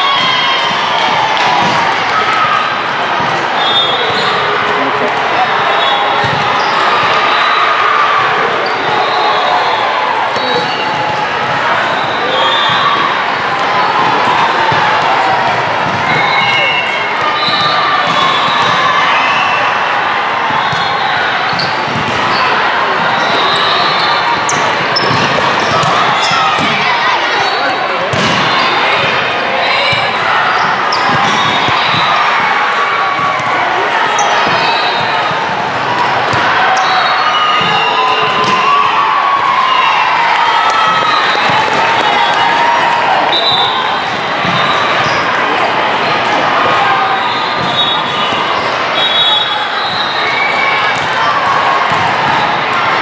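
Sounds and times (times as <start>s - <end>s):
din of many voices: 0.0s - 53.0s
sneaker squeaks: 3.6s - 4.6s, 5.7s - 7.6s, 8.6s - 9.7s, 10.3s - 11.2s, 16.1s - 19.4s, 20.5s - 28.9s, 29.8s - 32.2s, 44.4s - 45.4s
volleyball contacts: 20.5s - 26.9s, 28.1s - 32.6s.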